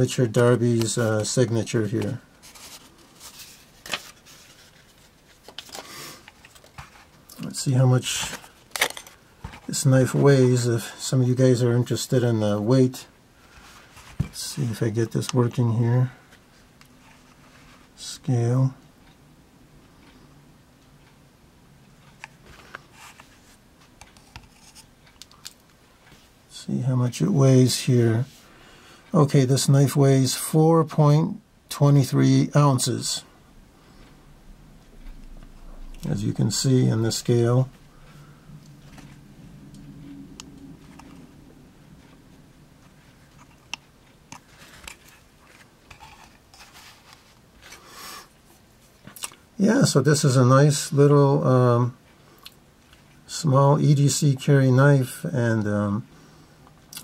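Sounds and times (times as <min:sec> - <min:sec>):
scratchy rubbing: 0:02.4 - 0:07.1.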